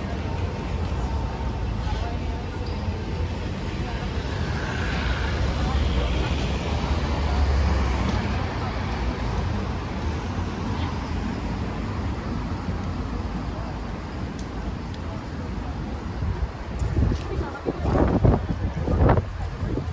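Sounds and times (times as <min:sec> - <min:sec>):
road traffic rumble: 0:00.0 - 0:19.9.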